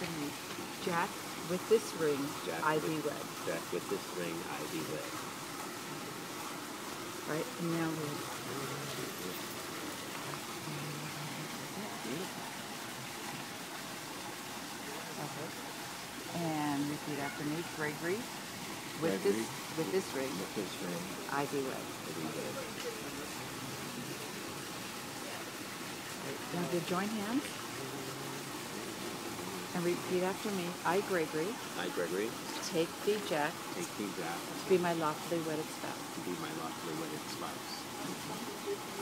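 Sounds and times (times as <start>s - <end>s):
outdoor background hiss: 0.0s - 39.0s.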